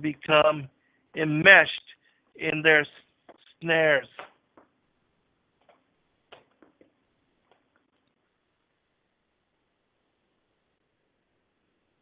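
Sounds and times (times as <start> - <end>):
man speaking: 0.0 - 4.3.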